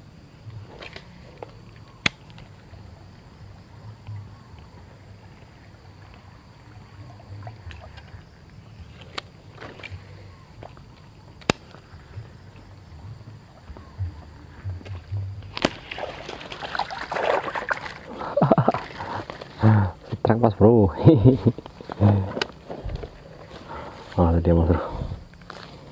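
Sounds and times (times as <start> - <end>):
faint low rumble: 0.0 - 16.4
sharp clicks: 11.4 - 11.8
water splashing and thrashing: 14.9 - 19.6.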